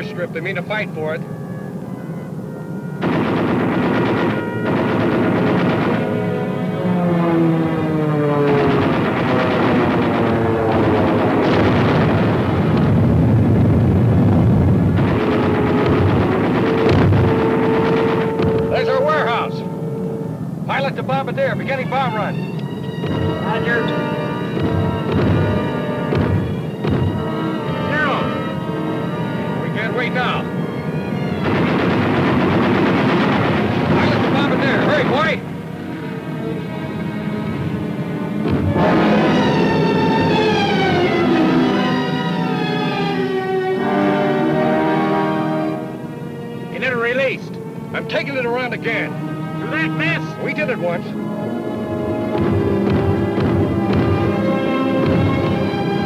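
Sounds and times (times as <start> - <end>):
dramatic orchestral music: 0.0 - 56.0
rapid machine-gun fire: 3.0 - 6.5, 8.4 - 18.8, 23.0 - 28.3, 31.4 - 35.4, 52.3 - 56.0.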